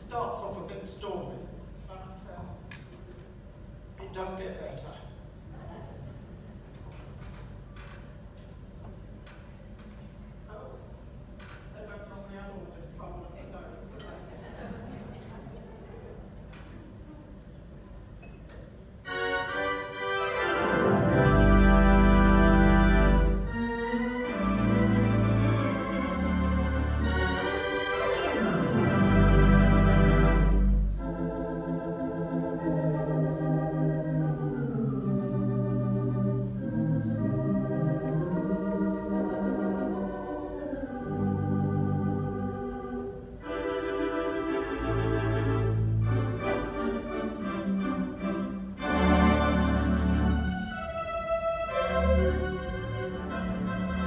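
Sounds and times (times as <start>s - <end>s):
organ playing slow chords: 19.0s - 54.0s.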